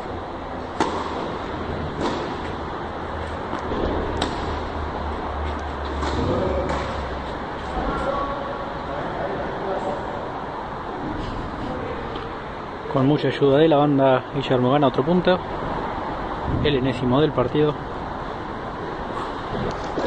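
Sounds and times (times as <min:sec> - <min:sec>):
tennis racket hitting ball: 0:00.6 - 0:04.7.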